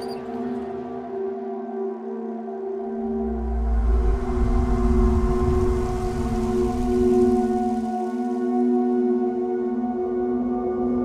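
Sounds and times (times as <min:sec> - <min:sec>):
deep rumble: 0:03.2 - 0:07.9.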